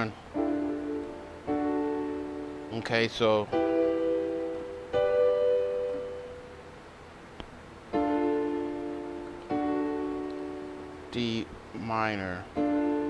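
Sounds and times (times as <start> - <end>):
digital keyboard chords: 0.0 - 7.0, 7.9 - 13.0.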